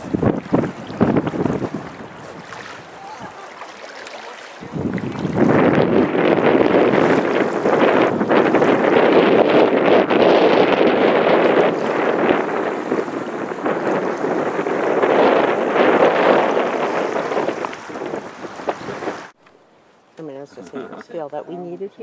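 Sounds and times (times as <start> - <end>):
wind rushing: 0.0 - 3.4, 4.6 - 19.4
water rushing past boat: 0.0 - 19.4.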